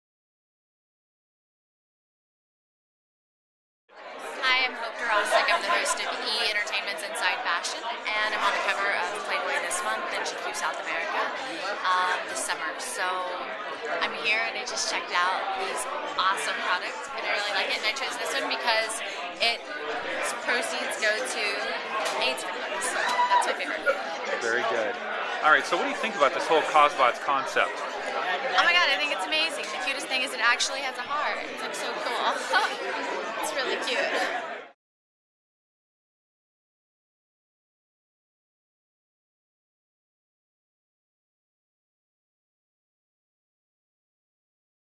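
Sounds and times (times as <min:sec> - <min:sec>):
woman talking: 0:04.4 - 0:13.4, 0:14.0 - 0:19.6, 0:20.2 - 0:23.9, 0:28.6 - 0:32.8, 0:33.4 - 0:34.3.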